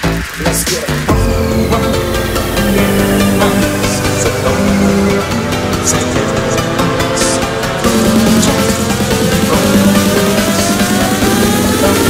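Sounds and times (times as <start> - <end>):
electronic dance music: 0.0 - 12.0
rising synth tone: 1.1 - 12.0.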